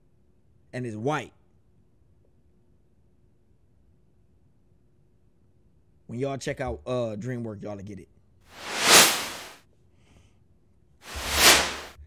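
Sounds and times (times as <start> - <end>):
whoosh sound effect: 8.6 - 9.5, 11.1 - 11.9.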